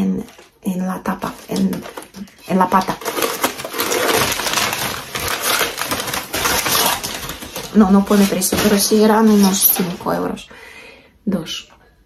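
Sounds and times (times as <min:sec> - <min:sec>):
packaging crackling and crinkling: 0:00.1 - 0:10.3.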